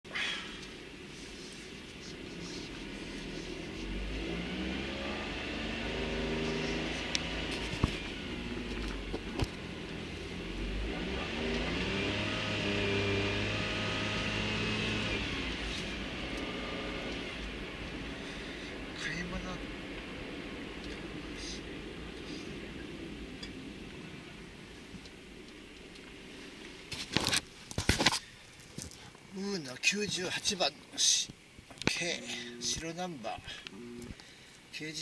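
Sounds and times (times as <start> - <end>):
road noise inside car: 0.6 - 27.6, 31.3 - 34.2
car engine revving: 2.0 - 24.5.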